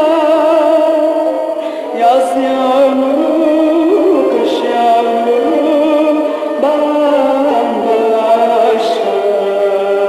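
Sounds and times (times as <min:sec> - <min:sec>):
musical accompaniment: 0:00.0 - 0:10.0
woman singing: 0:00.0 - 0:10.0.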